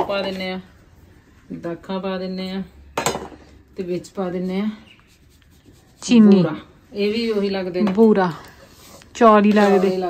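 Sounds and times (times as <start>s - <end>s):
faint light scratching: 4.0s - 10.0s.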